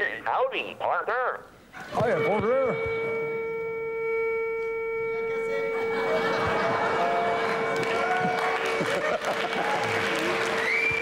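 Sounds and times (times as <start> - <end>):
toy horn-like tone: 2.0 - 9.2
audience laughter: 5.8 - 10.6.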